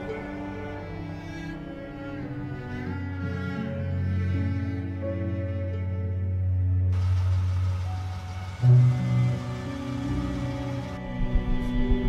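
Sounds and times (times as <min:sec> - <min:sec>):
car engine and road noise: 0:06.9 - 0:11.0
low hum: 0:06.9 - 0:12.0.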